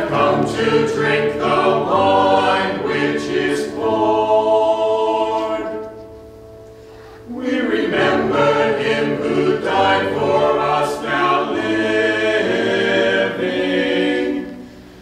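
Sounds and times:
church choir singing: 0:00.0 - 0:06.4, 0:07.0 - 0:15.0.

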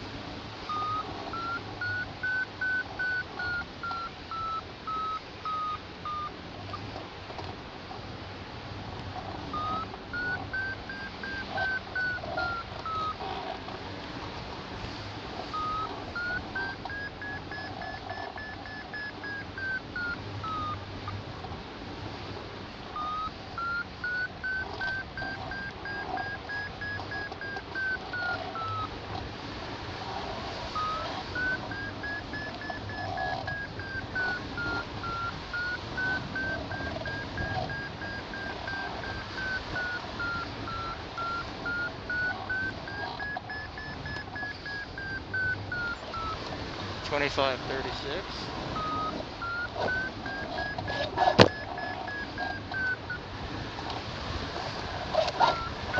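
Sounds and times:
variometer beeping: 0:00.6 - 0:07.0, 0:09.1 - 0:13.7, 0:14.9 - 0:21.6, 0:22.2 - 0:29.3, 0:30.0 - 0:55.9.

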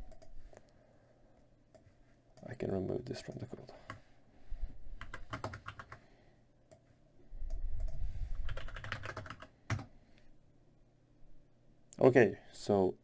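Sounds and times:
computer keyboard typing: 0:05.0 - 0:06.0, 0:07.8 - 0:09.9.

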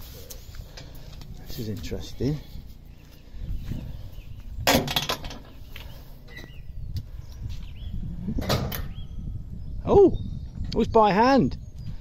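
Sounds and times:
steady low rumble: 0:00.0 - 0:10.8
sharp metal clunks: 0:04.6 - 0:05.6, 0:08.4 - 0:09.0.

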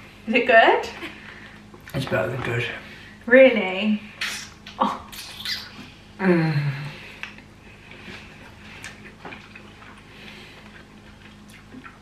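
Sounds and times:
steady low hum: 0:00.0 - 0:12.0
wet chewing mouth clicks: 0:07.2 - 0:12.0.

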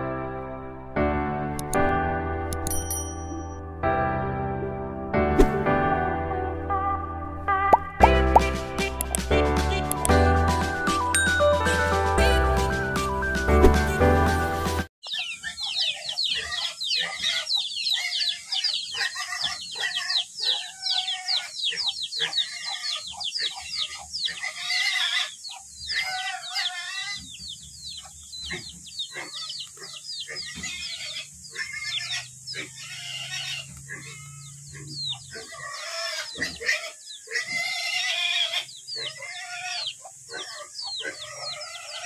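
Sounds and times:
chickens clucking: 0:15.0 - 0:37.8, 0:38.7 - 0:42.0
birds chirping: 0:15.0 - 0:42.0.

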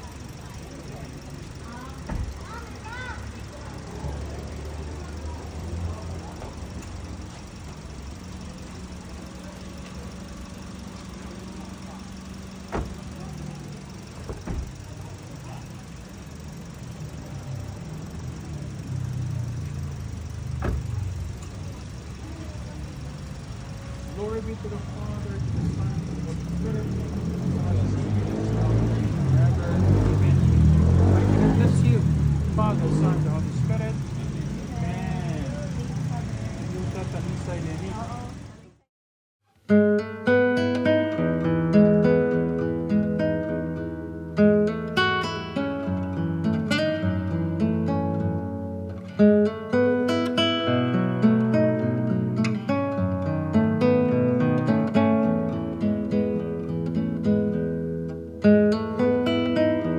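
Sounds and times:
car engine idling: 0:00.0 - 0:38.9, 0:40.6 - 0:59.9
people talking: 0:00.0 - 0:38.9.

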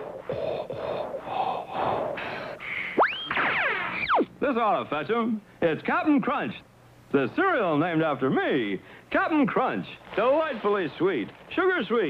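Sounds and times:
cartoon snoring: 0:00.0 - 0:02.5.

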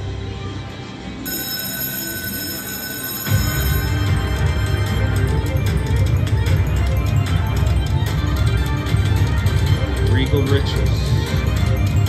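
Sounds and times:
slot machine game music: 0:00.0 - 0:12.0
bell-like electronic ringing: 0:01.2 - 0:06.2.

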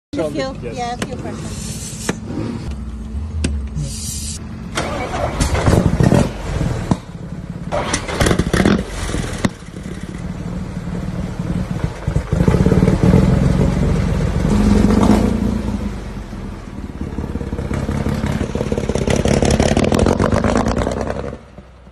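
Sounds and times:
racing car engine starting: 0:02.2 - 0:21.6.

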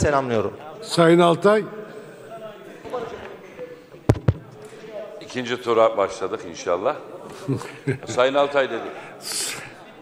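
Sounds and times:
faint murmur of voices: 0:00.0 - 0:10.0.

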